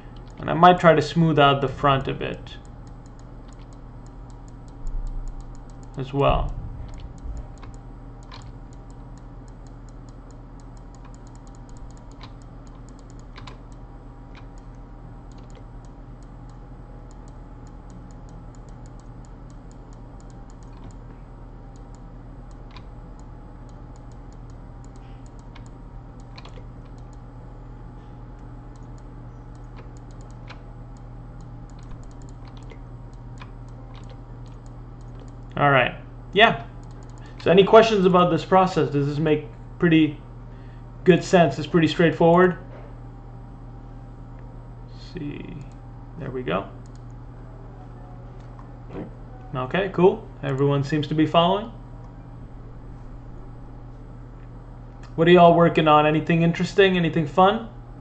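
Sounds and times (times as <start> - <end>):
low electrical hum: 0.0 - 58.0
computer keys clicking: 2.6 - 21.1, 21.7 - 27.3, 28.4 - 35.6, 36.7 - 37.5, 46.8 - 47.2.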